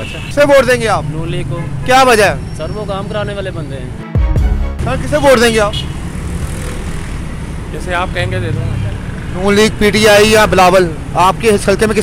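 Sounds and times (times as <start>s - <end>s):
street traffic rumble: 0.0s - 4.1s, 4.8s - 12.0s.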